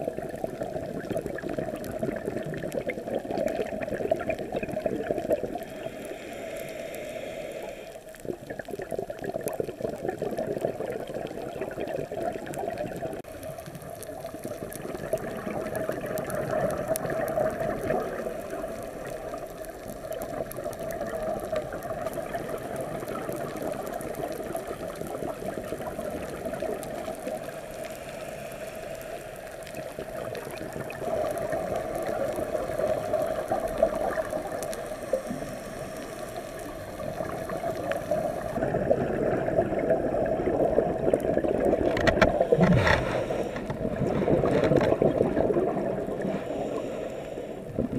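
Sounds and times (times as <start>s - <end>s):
exhaled bubbles underwater: 0.0s - 47.9s
muffled hiss: 0.0s - 47.9s
diver's regulator breathing: 5.4s - 8.4s, 26.2s - 38.6s, 42.3s - 45.0s, 46.0s - 47.9s.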